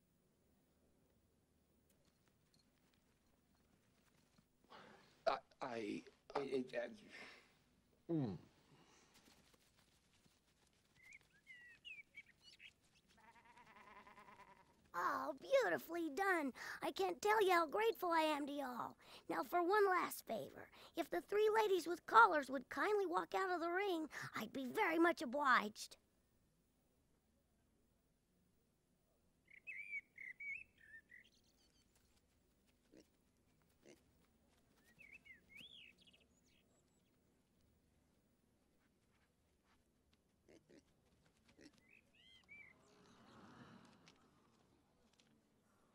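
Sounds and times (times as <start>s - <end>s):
faint bird chirps: 10.9s - 14.6s, 29.4s - 32.2s, 34.8s - 37.2s, 41.7s - 43.6s
sheep bleating: 13.2s - 14.8s.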